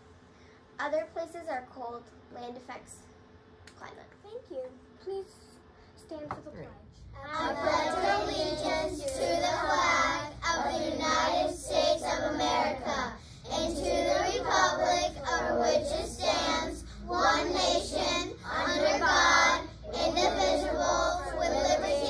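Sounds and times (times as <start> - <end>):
children reciting in unison: 7.2 - 22.0.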